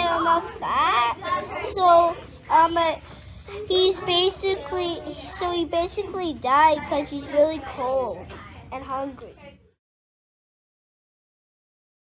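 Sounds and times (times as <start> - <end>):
child speaking: 0.0 - 9.7.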